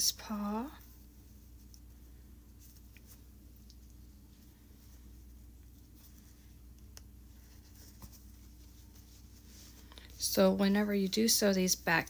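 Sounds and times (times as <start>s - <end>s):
low steady hum: 0.0s - 12.0s
fabric rustling: 0.2s - 11.2s.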